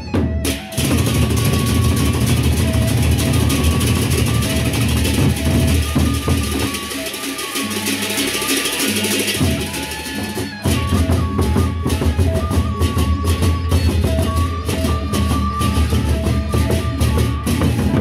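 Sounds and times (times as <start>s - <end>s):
barrel drums beaten hard: 0.0s - 18.0s
hand cymbals clashing: 0.6s - 11.2s.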